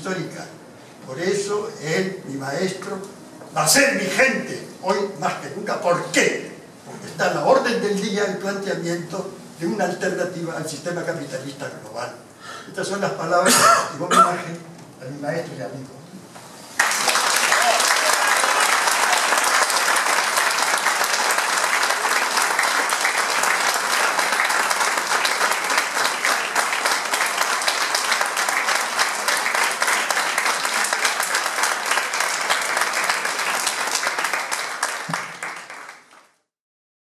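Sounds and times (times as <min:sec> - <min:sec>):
audience applauding: 0:16.8 - 0:36.4.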